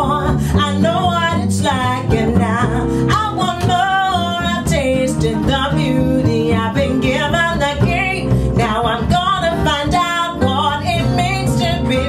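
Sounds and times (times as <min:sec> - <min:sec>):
acoustic guitar: 0:00.0 - 0:12.0
plucked double bass: 0:00.0 - 0:12.0
woman singing: 0:00.0 - 0:12.0.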